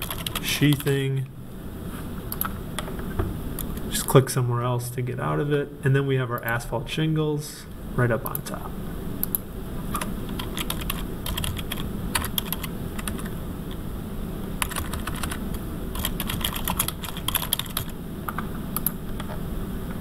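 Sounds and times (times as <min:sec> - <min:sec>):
typing on computer keyboard: 0:00.0 - 0:00.9, 0:10.0 - 0:13.3, 0:14.6 - 0:15.4, 0:16.0 - 0:19.3
low steady hum: 0:00.0 - 0:20.0.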